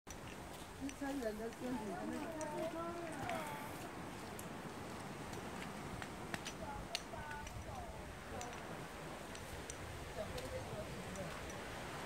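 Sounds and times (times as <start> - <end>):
trekking poles clicking on trail: 0.1 - 3.5, 5.3 - 11.8.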